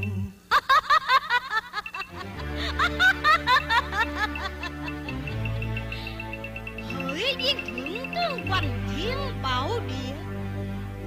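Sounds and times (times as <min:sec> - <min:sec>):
woman laughing theatrically: 0:00.5 - 0:05.2
low backing music: 0:01.8 - 0:11.0.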